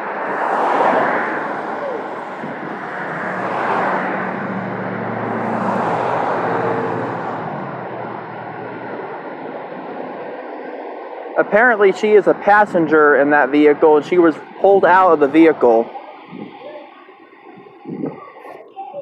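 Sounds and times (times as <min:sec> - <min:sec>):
vehicles driving past: 0:00.0 - 0:19.0.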